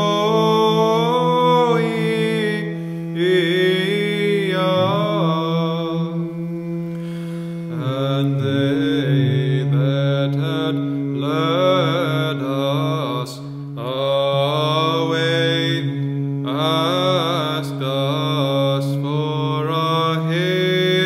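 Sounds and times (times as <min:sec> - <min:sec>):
chant melody sung: 0:00.0 - 0:21.0
held drone note: 0:00.0 - 0:21.0.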